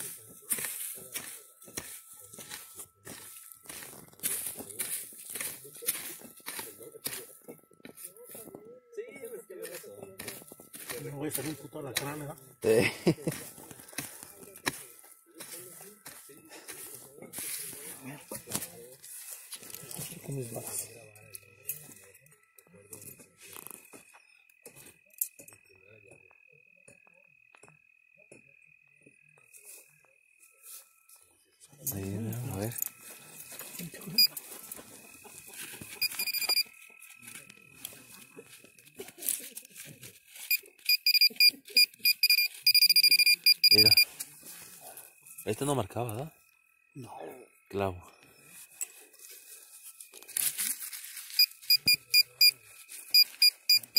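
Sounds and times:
metal detector beeping rapidly: 0:00.0 - 0:08.4, 0:09.1 - 0:25.0, 0:31.9 - 0:38.5, 0:40.4 - 0:44.2, 0:50.7 - 0:53.9.

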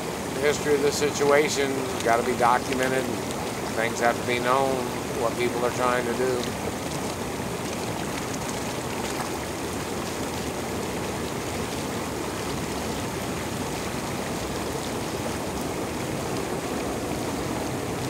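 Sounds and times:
hot tub bubble jets churning: 0:00.0 - 0:18.0.

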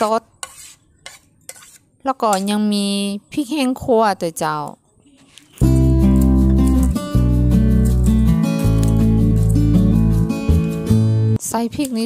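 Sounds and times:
metal spoon scraping a plate: 0:00.4 - 0:02.6.

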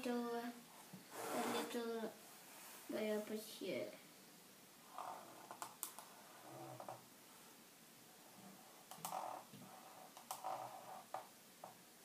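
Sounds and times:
marker squeaking on whiteboard: 0:08.7 - 0:11.3.

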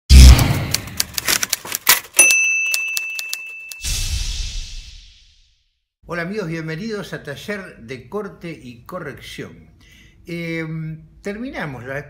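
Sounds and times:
typewriter key clacks: 0:00.7 - 0:03.8
typewriter carriage bell: 0:01.8 - 0:03.8
swish: 0:03.8 - 0:05.6.

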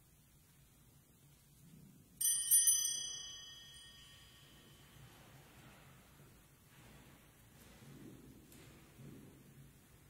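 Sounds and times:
small bells jingling: 0:02.2 - 0:05.1.

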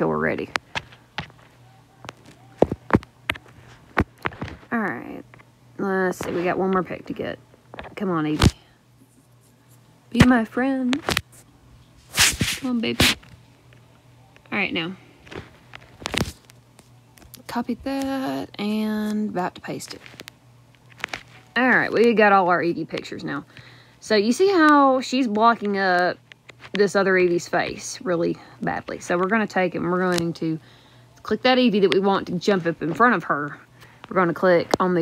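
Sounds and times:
faint low hum: 0:00.0 - 0:35.0.

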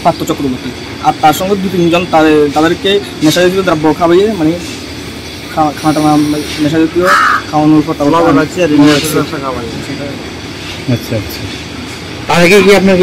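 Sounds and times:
man speaking: 0:00.0 - 0:04.7, 0:05.5 - 0:10.2, 0:10.8 - 0:11.6, 0:12.2 - 0:13.0
harsh burst of noise: 0:00.0 - 0:13.0.

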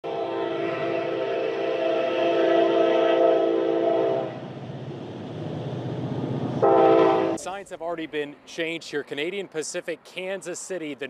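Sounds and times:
locomotive air horn: 0:00.0 - 0:04.5, 0:06.6 - 0:07.4
train rumbling: 0:00.0 - 0:08.1.

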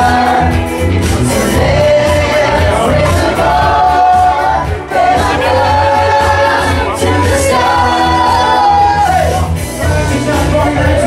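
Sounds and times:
bass line: 0:00.0 - 0:11.0
voices singing together: 0:00.0 - 0:11.0.

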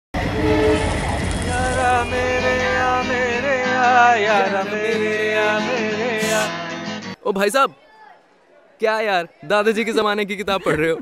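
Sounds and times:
two-note train horn: 0:00.2 - 0:03.1
train rumble: 0:00.2 - 0:03.2
music with sung melody: 0:01.4 - 0:07.2.

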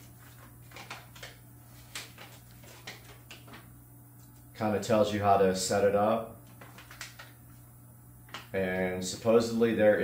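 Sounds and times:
paper rustling and crinkling: 0:00.0 - 0:04.4, 0:06.4 - 0:07.6
steady low hum: 0:00.0 - 0:10.0.

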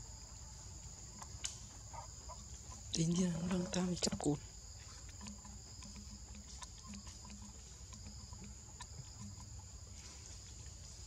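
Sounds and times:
faint ticks: 0:00.0 - 0:11.0
high-pitched insect drone: 0:00.0 - 0:11.0.

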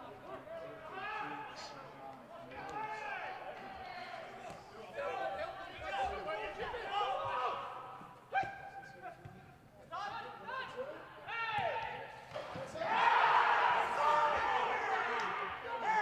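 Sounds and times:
footballers shouting with echo: 0:00.0 - 0:09.4, 0:10.0 - 0:16.0.

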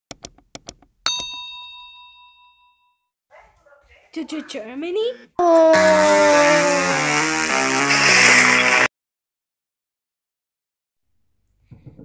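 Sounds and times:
bell ding: 0:01.1 - 0:03.0.

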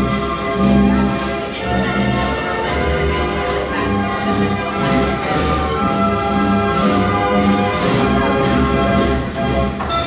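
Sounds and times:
carousel band organ playing: 0:00.0 - 0:10.0.

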